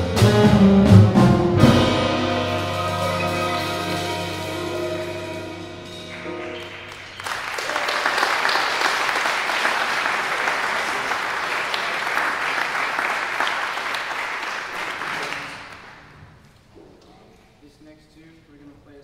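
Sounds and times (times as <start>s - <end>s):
jazz music: 0.0s - 14.3s
audience clapping: 5.9s - 16.2s.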